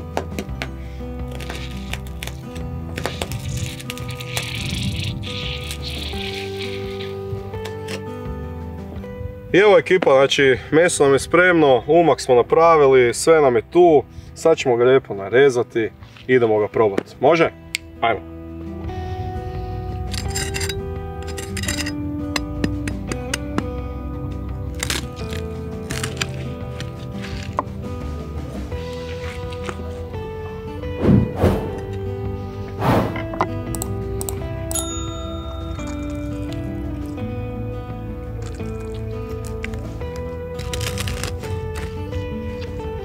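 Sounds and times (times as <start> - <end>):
background music: 0.0 - 43.0
knife crunching crackling: 1.3 - 7.2, 24.7 - 27.6, 38.4 - 42.0.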